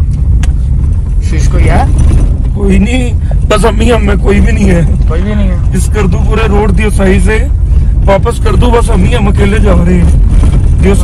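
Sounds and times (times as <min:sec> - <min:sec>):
car engine and tyres rumbling: 0:00.0 - 0:11.0
man talking: 0:02.6 - 0:10.2.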